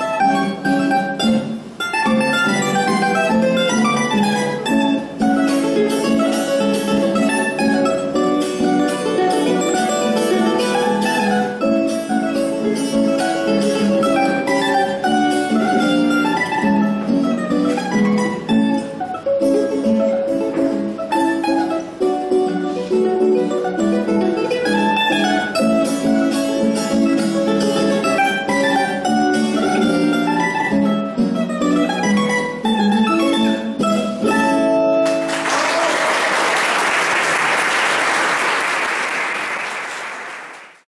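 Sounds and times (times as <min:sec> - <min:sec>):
picked string melody: 0:00.0 - 0:35.4
audience applause: 0:35.0 - 0:40.9.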